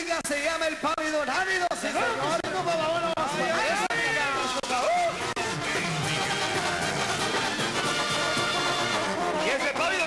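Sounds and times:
brass band playing: 2.0s - 10.0s.

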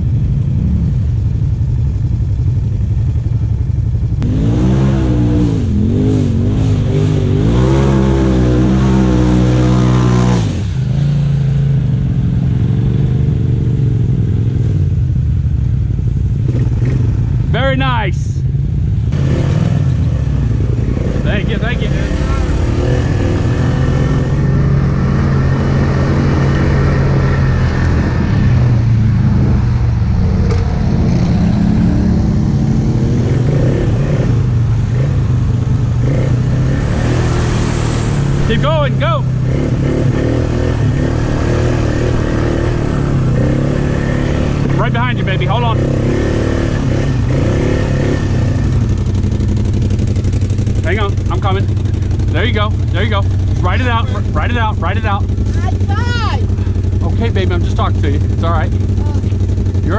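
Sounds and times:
quad bike engine running: 0.0s - 59.9s
person calling out: 55.5s - 56.6s, 59.0s - 59.4s
people shouting: 55.7s - 56.5s.

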